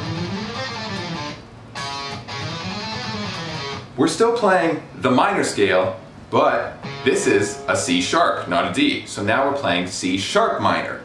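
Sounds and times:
electric guitar plucked notes: 0.0s - 3.9s, 6.7s - 8.1s.

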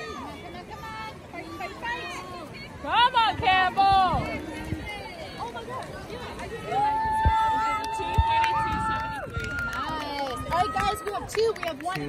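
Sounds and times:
spectators cheering yells: 6.6s - 11.2s.

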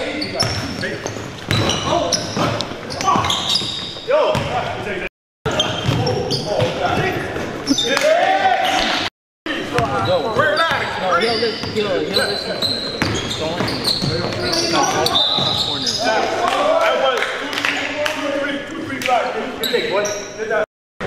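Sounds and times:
sneakers squeaking: 0.0s - 9.0s, 9.6s - 16.4s, 19.5s - 20.6s.

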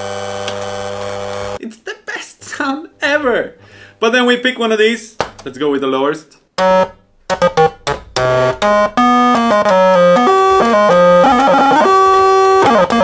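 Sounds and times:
toy synthesizer low notes: 6.6s - 13.0s.

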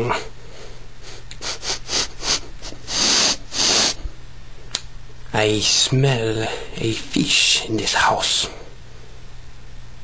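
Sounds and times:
person sniffing: 1.0s - 4.1s.

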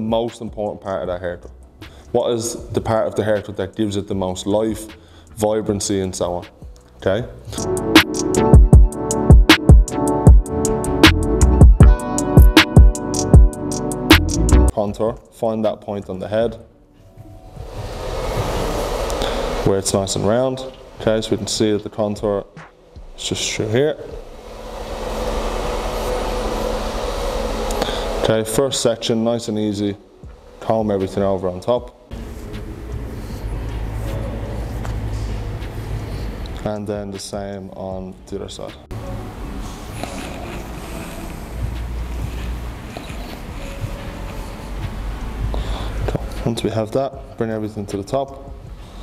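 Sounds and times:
steady rushing noise: 17.4s - 21.6s, 23.1s - 29.2s.

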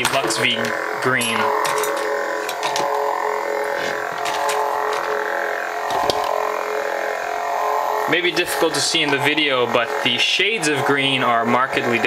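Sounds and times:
lightsaber idle hum: 0.0s - 12.0s.

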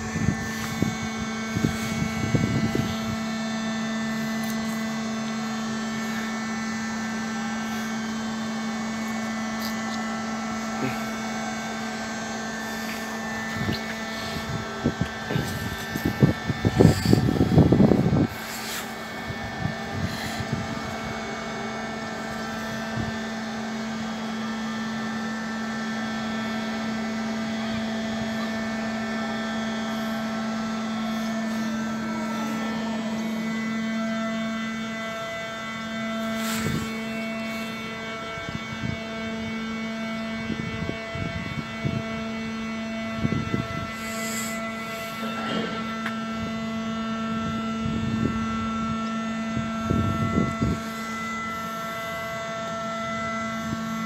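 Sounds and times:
machinery humming: 0.0s - 54.0s.

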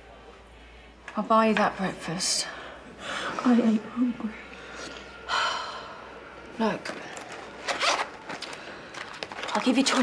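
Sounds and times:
zip being pulled open: 7.6s - 8.2s.

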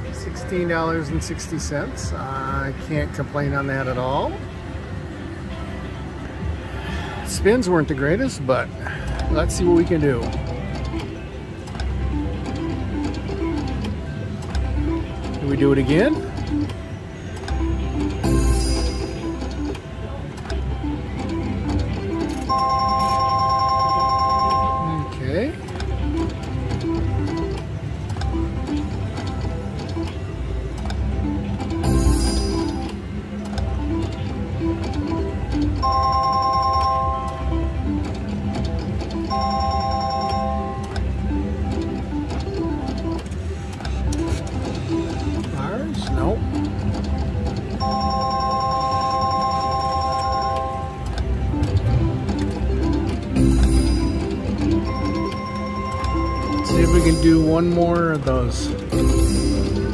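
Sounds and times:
casino floor din: 21.1s - 27.5s, 38.0s - 40.9s, 44.2s - 59.9s
bright ringing electronic tone: 22.5s - 25.2s, 35.8s - 37.5s, 39.3s - 40.9s, 47.8s - 51.0s
short beeping electronic notes: 53.4s - 57.9s.

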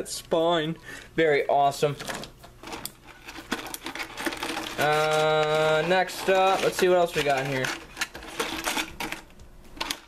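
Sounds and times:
plastic toys clattering in a tub: 2.0s - 10.0s.

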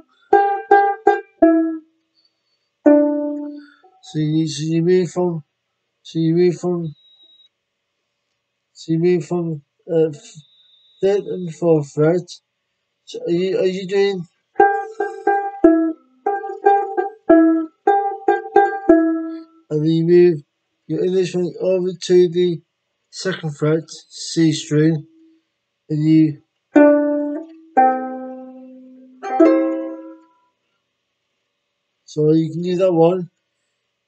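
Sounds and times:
banjo-ukulele strummed: 0.0s - 1.8s, 2.9s - 3.7s, 14.0s - 19.6s, 26.8s - 30.3s.

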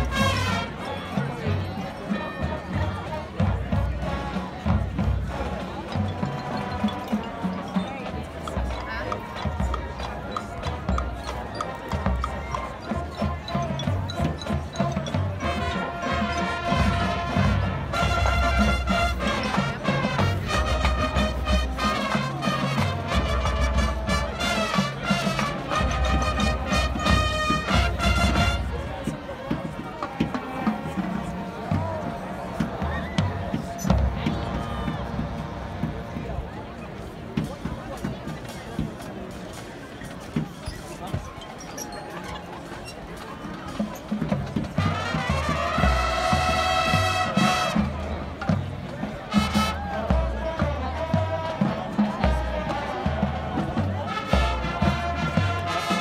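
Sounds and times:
crowd noise: 0.0s - 56.0s.

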